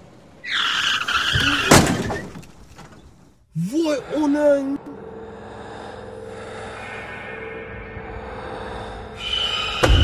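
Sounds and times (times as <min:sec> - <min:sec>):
car tyres screeching: 0:00.4 - 0:02.5
thud: 0:01.7 - 0:02.4.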